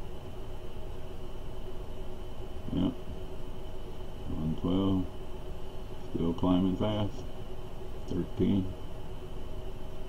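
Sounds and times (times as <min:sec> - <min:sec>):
faint high whine: 0:00.0 - 0:10.0
low background hum: 0:00.0 - 0:10.0.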